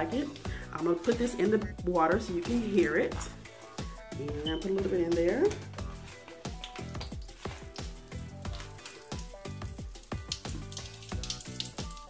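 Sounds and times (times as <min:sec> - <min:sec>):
background music: 0:00.0 - 0:12.0
bath crackles popping in water: 0:00.0 - 0:12.0.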